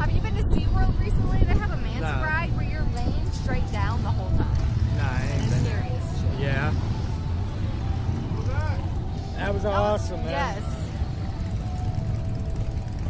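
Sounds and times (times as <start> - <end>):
steady low rumble: 0.0 - 13.0.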